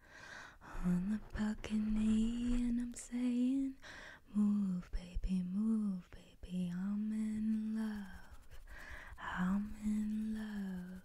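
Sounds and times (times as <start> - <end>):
woman humming softly: 0.6 - 11.0.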